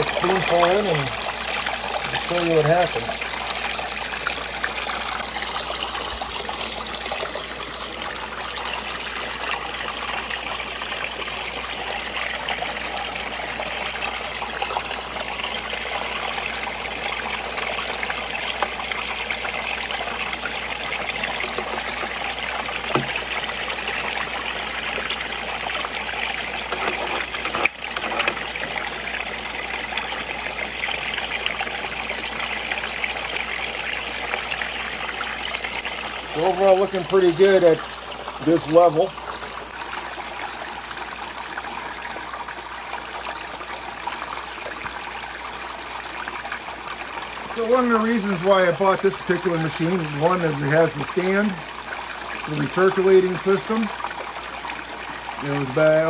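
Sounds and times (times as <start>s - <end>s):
water splashing and trickling: 0.0s - 56.0s.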